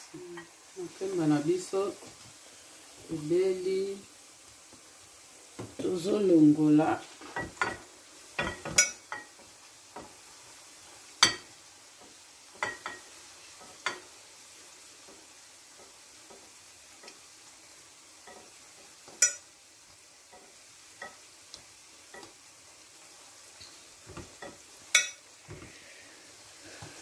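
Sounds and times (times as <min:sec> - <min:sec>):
plantain sizzling in frying oil: 0:00.0 - 0:27.0.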